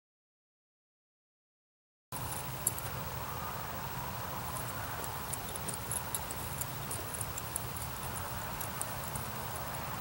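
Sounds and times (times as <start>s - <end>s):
faint high-pitched ticks: 2.2s - 3.0s, 4.4s - 10.0s.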